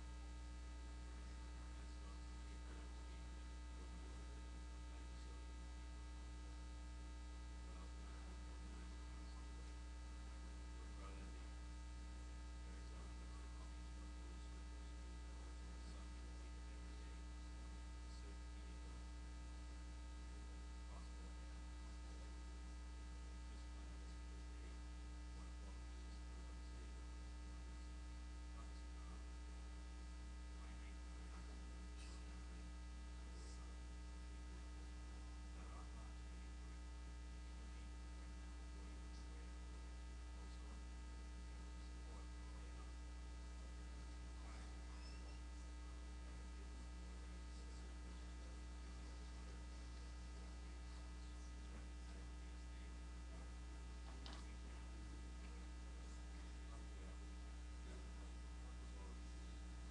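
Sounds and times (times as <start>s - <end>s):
electrical mains hum: 0.0s - 59.9s.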